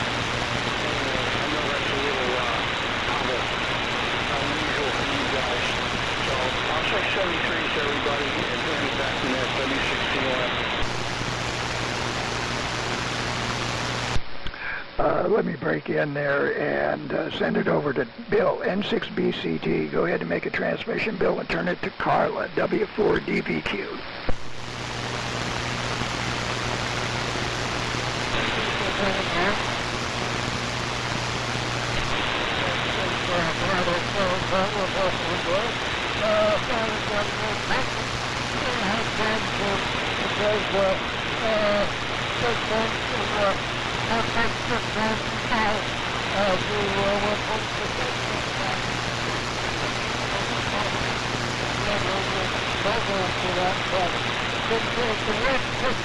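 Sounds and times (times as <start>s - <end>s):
faint voice under static: 0.0s - 10.8s, 11.4s - 24.1s, 25.0s - 56.0s
low steady hum: 0.0s - 56.0s
radio static and hiss: 0.0s - 56.0s.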